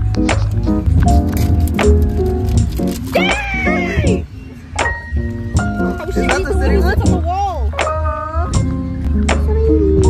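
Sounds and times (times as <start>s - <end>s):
music with bass beat: 0.0s - 10.0s.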